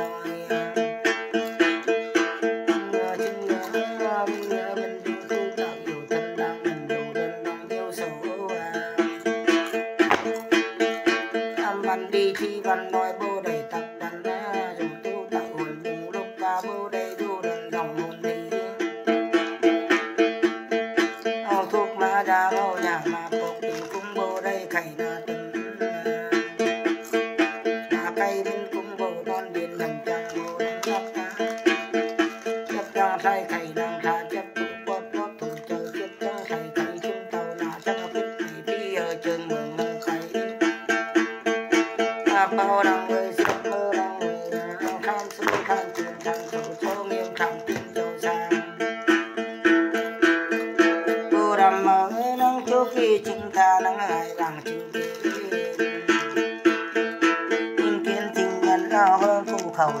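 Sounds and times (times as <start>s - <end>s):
plucked lute music: 0.0s - 60.0s.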